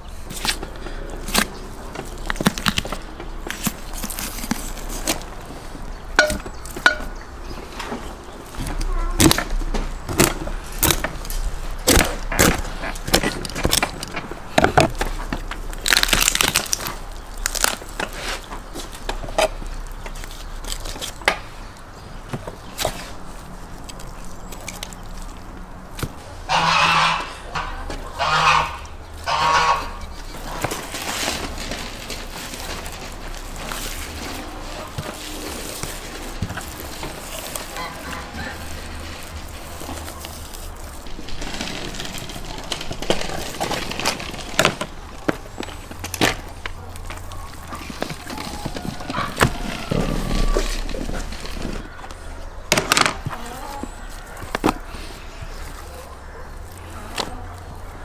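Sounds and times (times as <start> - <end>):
clicks and rustling: 0.2 - 26.2, 30.0 - 58.0
goose honking: 26.4 - 30.7, 37.5 - 39.0.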